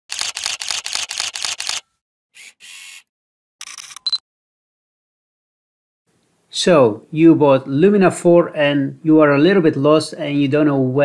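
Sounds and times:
camera shutter clicks: 0:00.1 - 0:01.8, 0:03.6 - 0:04.2.

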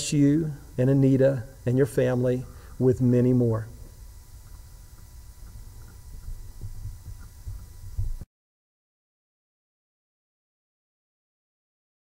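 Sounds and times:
faint steady hum: 0:00.0 - 0:08.3
soft irregular thumps: 0:04.5 - 0:08.2.

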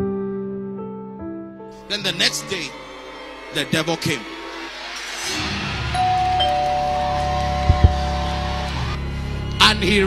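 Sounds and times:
background music: 0:00.0 - 0:10.0
two-note doorbell chime: 0:06.0 - 0:08.9
low thumps: 0:07.6 - 0:08.2.

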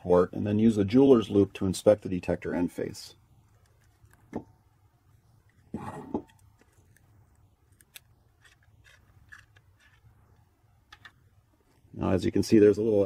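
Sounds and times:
faint clicks and handling noises: 0:02.8 - 0:12.0.

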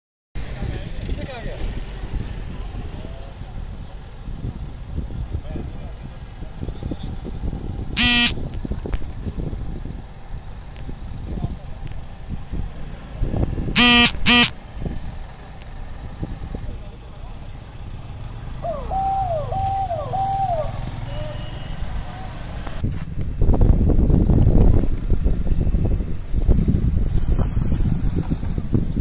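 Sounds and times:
motorcycle and car engines: 0:00.4 - 0:29.0
horn honks: 0:08.0 - 0:08.4, 0:13.8 - 0:14.6, 0:21.0 - 0:22.1.

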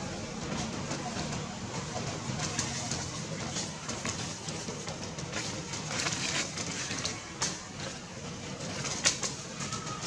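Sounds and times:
outdoor ambience: 0:00.0 - 0:10.0.

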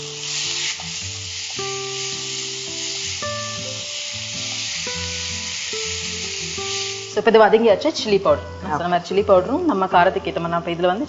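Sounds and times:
food sizzling in a frying pan: 0:00.0 - 0:08.2
instrumental background music: 0:00.0 - 0:11.0.

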